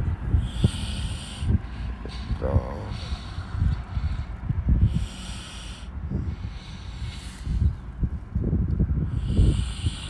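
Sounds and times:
hissing breath: 0.4 - 7.8, 9.0 - 10.0
breath puffs on microphone: 0.4 - 8.0, 9.0 - 10.0.

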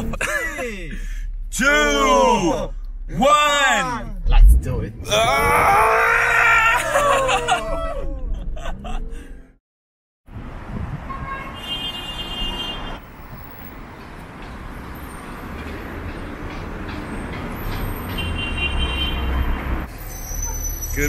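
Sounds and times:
car horn: 11.0 - 13.0, 18.1 - 19.8
passing cars rumble: 12.8 - 20.2.

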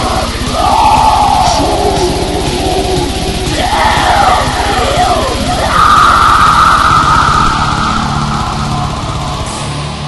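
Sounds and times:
thrash metal music: 0.0 - 10.0
high sustained guitar note: 1.6 - 10.0.

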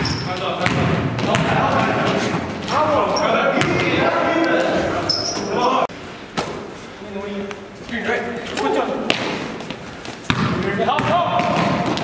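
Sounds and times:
ball bouncing: 0.0 - 2.9, 3.6 - 4.6, 9.1 - 12.0
sneakers squeaking on court: 0.0 - 3.9, 4.8 - 5.7
players shouting: 1.2 - 5.9.

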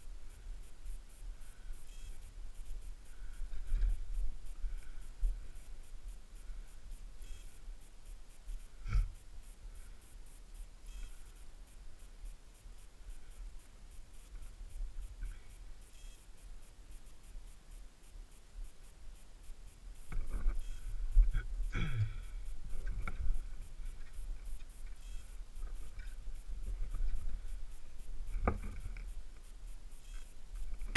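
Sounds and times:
faint rapid ticking: 0.0 - 30.9.

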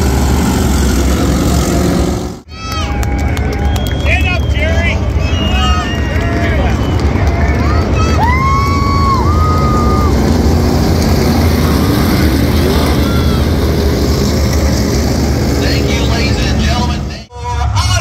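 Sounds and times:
race car engines droning: 0.0 - 18.0
voices: 2.5 - 14.5, 15.2 - 18.0.

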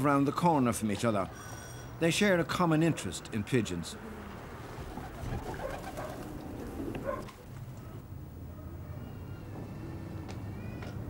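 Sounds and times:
pigeons cooing: 4.0 - 8.0.

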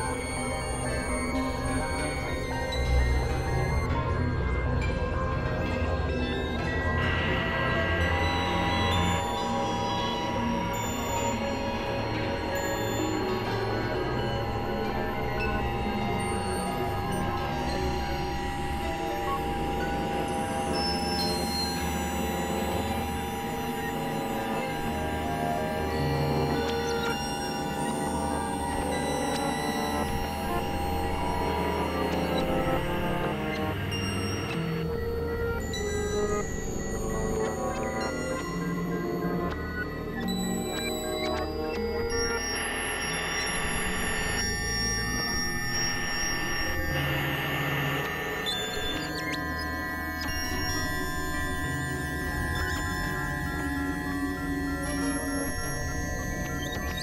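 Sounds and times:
electronic drone music: 0.0 - 57.0.

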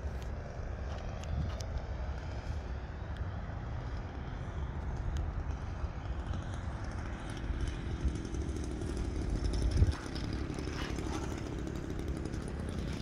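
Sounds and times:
model airplane engine buzzing: 0.0 - 13.0.

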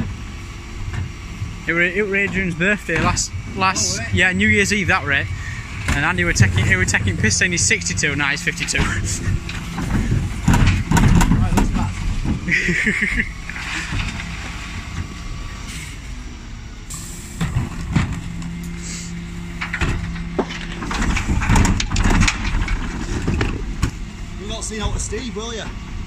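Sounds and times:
refuse lorry engine running: 0.0 - 26.0
bins knocking against lift: 8.8 - 12.4.

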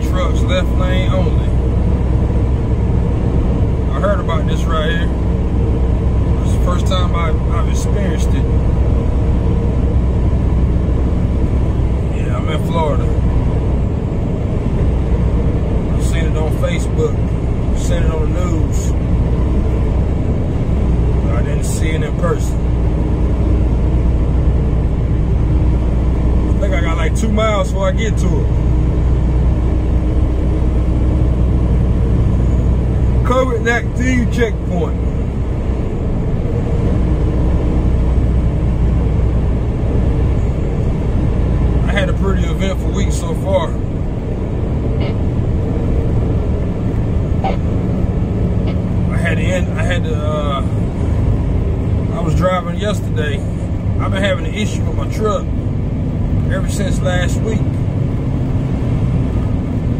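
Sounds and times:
truck diesel engine and road noise: 0.0 - 59.9.

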